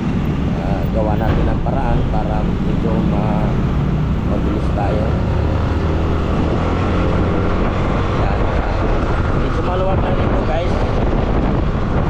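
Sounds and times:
wind and road noise: 0.0s - 12.0s.

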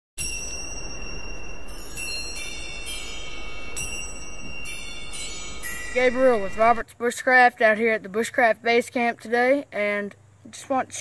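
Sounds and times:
bell-like chime tones: 0.2s - 6.8s
steady hiss: 0.3s - 11.0s.

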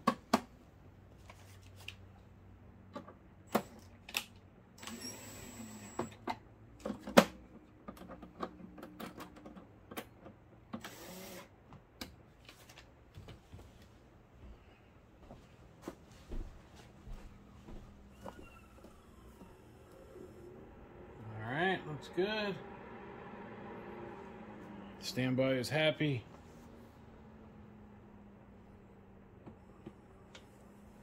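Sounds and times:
faint low hum: 7.6s - 31.0s.

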